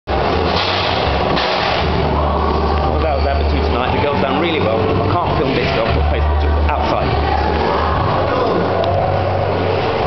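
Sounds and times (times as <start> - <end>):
steady low hum: 0.1 - 10.0
babble of voices: 2.0 - 10.0.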